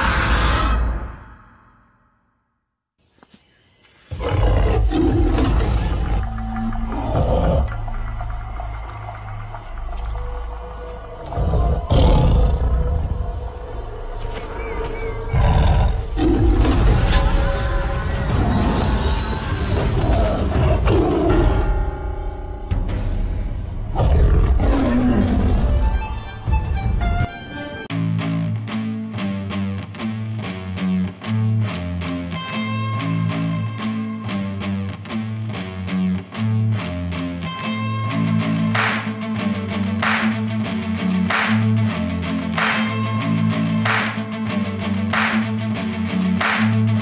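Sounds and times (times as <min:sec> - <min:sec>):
big cat roaring: 0:04.1 - 0:07.8, 0:11.2 - 0:13.2, 0:15.2 - 0:17.3, 0:19.7 - 0:21.6, 0:23.9 - 0:25.8
low droning music: 0:04.1 - 0:47.0.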